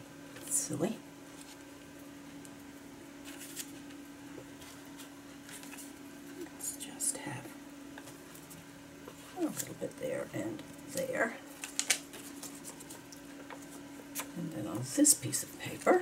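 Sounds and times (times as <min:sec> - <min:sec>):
steady low hum: 0:00.0 - 0:16.0
paper rustling on cutting mat: 0:03.2 - 0:06.0, 0:11.5 - 0:14.4.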